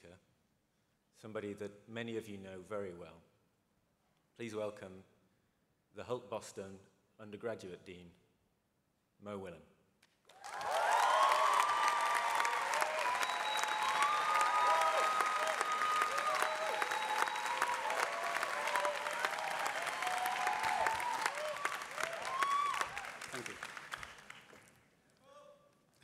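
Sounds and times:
audience applauding: 10.3 - 24.9
voices cheering: 10.4 - 23.8.

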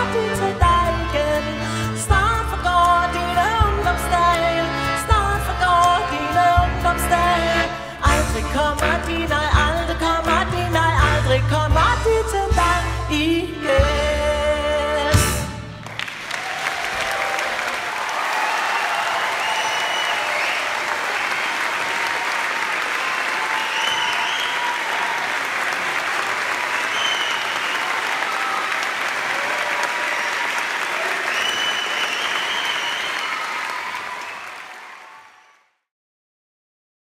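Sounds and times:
audience applauding: 15.8 - 35.8.

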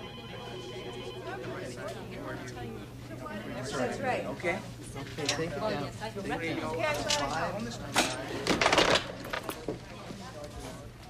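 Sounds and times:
telephone ringing: 0.0 - 1.8.

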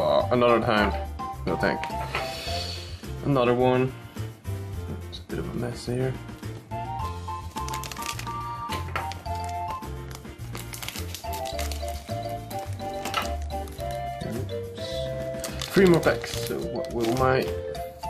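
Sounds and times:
background music with bass line: 0.0 - 18.0
trading cards rustling: 7.0 - 18.0
foil pack crinkling: 7.4 - 14.2, 14.8 - 17.6.

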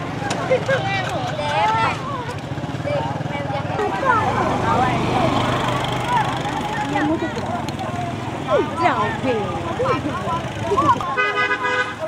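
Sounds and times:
people chattering: 0.0 - 12.0
small motorcycle engine running: 0.1 - 11.1.

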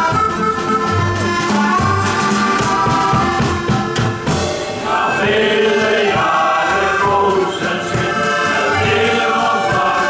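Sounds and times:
band accompaniment: 0.0 - 10.0
male choir singing a sea shanty: 4.8 - 10.0.

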